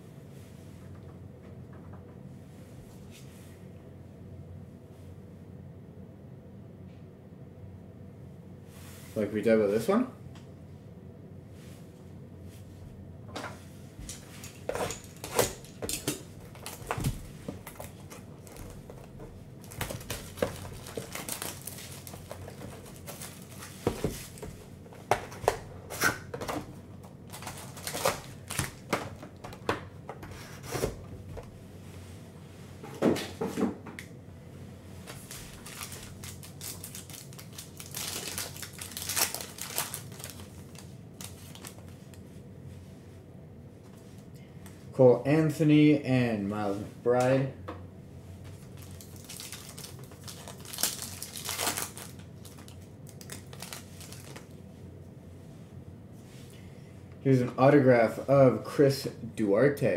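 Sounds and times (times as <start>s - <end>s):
plastic wrap crinkling and tearing: 14.4s - 24.6s, 27.2s - 29.6s, 35.1s - 42.0s, 48.6s - 54.5s
card pack being torn open: 19.6s - 24.4s, 27.3s - 29.0s, 35.1s - 41.8s, 48.8s - 54.5s.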